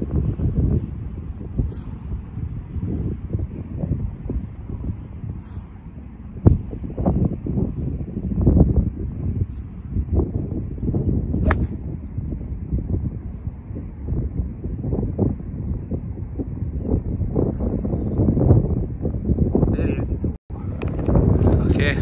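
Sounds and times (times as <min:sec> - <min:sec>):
wind gusting on microphone: 0:00.0 - 0:22.0
golf club striking ball: 0:11.4 - 0:11.8.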